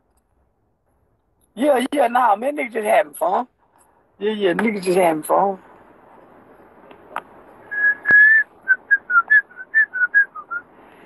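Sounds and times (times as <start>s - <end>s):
person whistling a tune: 7.7s - 10.6s.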